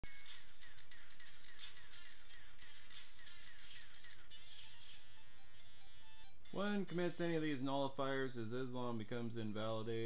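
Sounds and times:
tinny video game music: 0.0s - 10.0s.

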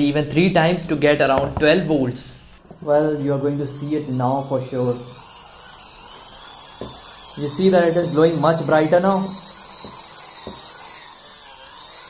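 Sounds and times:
motor high-pitched whine: 2.6s - 12.0s.

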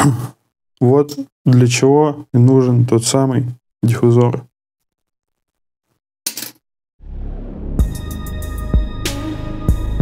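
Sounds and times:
metal part clinking on steel table: 6.3s - 6.6s
background music with low beat: 7.5s - 10.0s.

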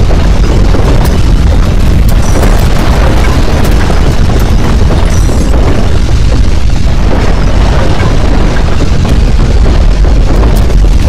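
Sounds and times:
crackling and rattling: 0.0s - 11.0s
earthquake rumble: 0.0s - 11.0s.

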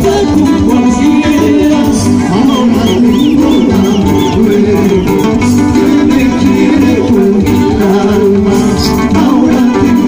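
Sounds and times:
live band music: 0.0s - 10.0s
plucked guitar: 0.0s - 10.0s.

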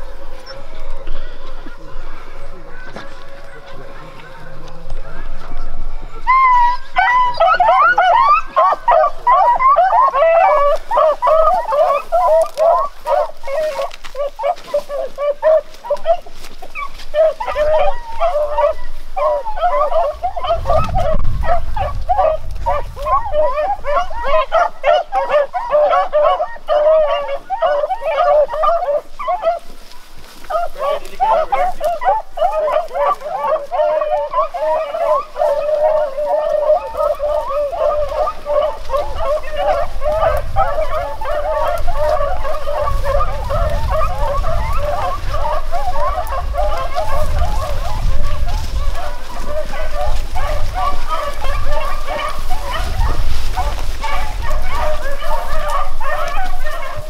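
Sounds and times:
dogs baying: 0.0s - 57.0s.

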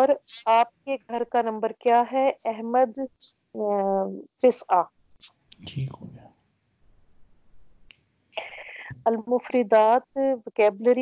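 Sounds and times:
person speaking: 0.0s - 4.8s, 5.6s - 6.2s, 8.4s - 11.0s.

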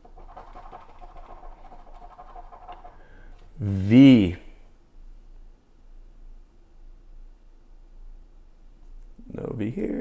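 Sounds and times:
coin scratching a ticket: 0.1s - 3.0s.

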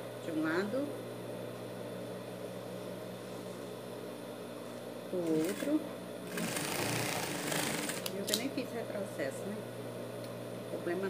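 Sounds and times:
sewing machine running: 6.3s - 8.1s.

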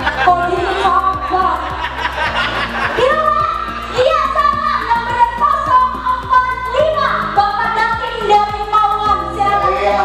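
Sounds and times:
backing track with steady beat: 0.0s - 10.0s.

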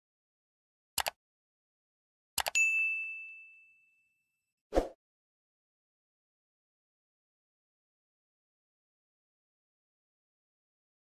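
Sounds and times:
bell ding: 2.6s - 4.3s.

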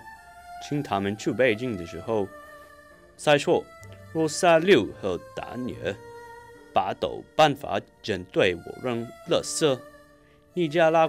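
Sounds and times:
faint background music: 0.0s - 11.0s
man speaking quickly: 0.7s - 2.3s, 3.2s - 3.6s, 4.2s - 6.0s, 6.8s - 9.8s, 10.6s - 11.0s.

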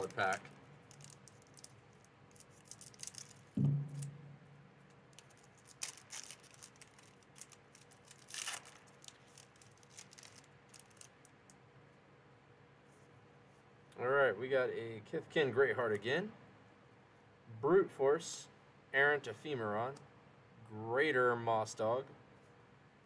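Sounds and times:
foil wrapper ripping: 0.0s - 4.0s, 5.1s - 11.3s
foil wrapper crinkling: 0.0s - 4.1s, 5.1s - 11.6s
dull thump: 3.6s - 4.3s.

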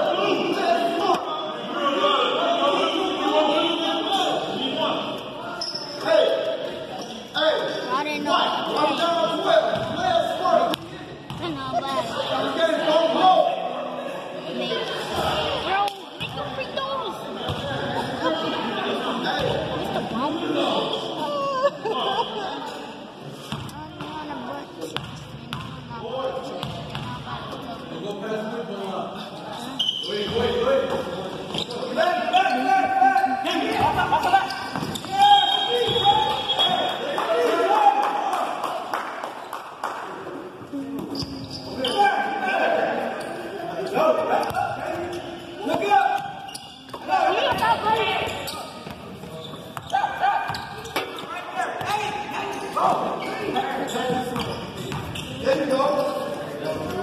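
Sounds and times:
voices calling out in echoing hall: 0.0s - 57.0s.

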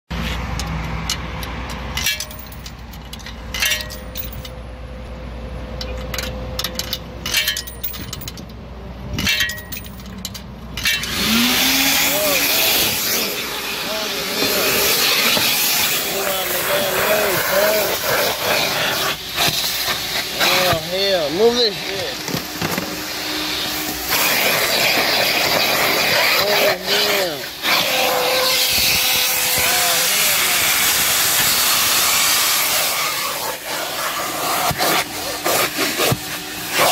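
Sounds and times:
vacuum motor running: 11.1s - 17.8s.

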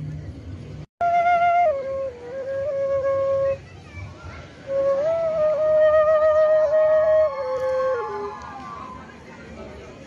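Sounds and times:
flute notes: 1.0s - 3.6s, 4.6s - 9.0s.

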